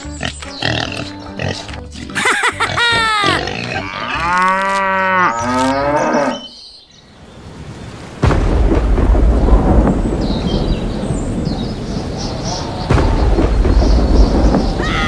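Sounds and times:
cow mooing: 3.3 - 6.5
rain: 6.9 - 15.0
thunder rumble: 7.4 - 15.0.

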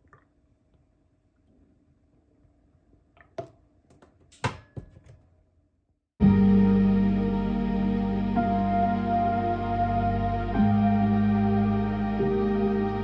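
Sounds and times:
cup and carton knocking on countertop: 4.4 - 5.2
calm background music: 6.2 - 13.0.

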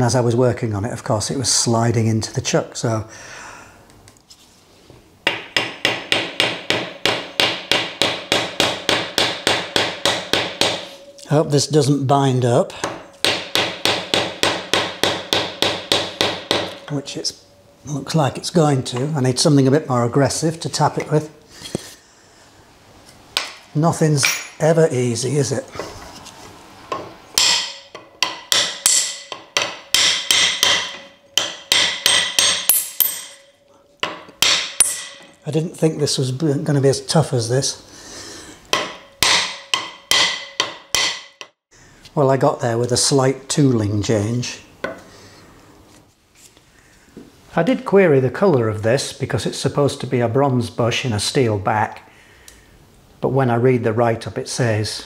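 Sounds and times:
hammer striking metal: 5.3 - 11.8, 12.8 - 17.2, 26.9 - 35.4, 38.7 - 41.6.

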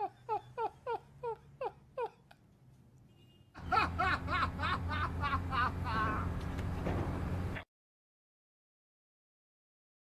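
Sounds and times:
man laughing: 0.0 - 2.4, 3.6 - 6.4.

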